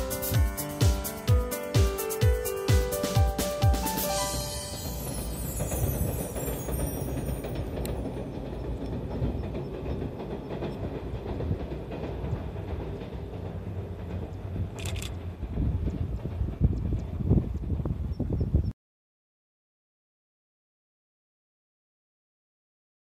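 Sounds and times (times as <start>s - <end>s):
distant train rumbling over bridge: 0.0s - 18.7s.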